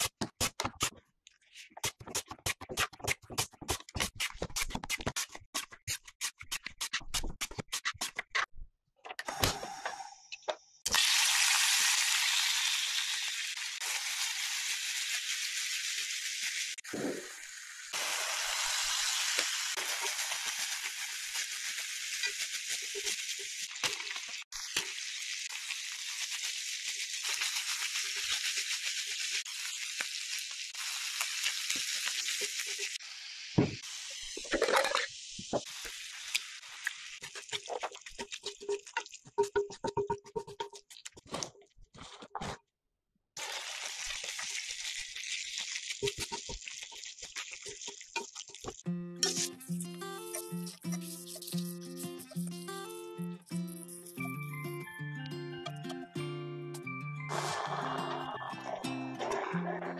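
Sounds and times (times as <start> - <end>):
chicken sizzling in a pan: 10.9 - 39.2, 43.4 - 49.6, 57.3 - 59.5
chopsticks stirring: 37.2 - 41.2, 50.3 - 52.4.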